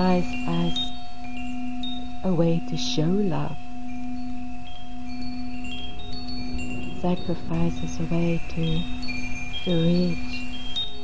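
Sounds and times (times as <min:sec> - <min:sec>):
chimes ringing: 0:00.0 - 0:11.0
low held drone: 0:00.0 - 0:11.0.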